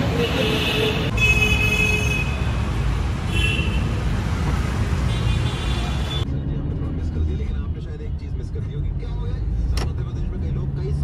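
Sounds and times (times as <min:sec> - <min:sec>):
vehicle rumble: 0:00.0 - 0:11.0
car road noise from inside: 0:06.2 - 0:11.0.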